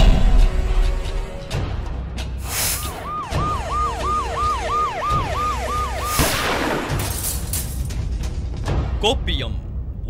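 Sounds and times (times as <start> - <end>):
low pulsing music: 0.0 - 10.0
police siren wailing: 2.8 - 7.0.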